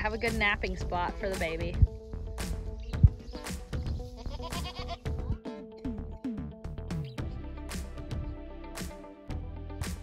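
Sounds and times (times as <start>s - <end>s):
background music: 0.0s - 10.0s
goats bleating: 4.0s - 5.4s.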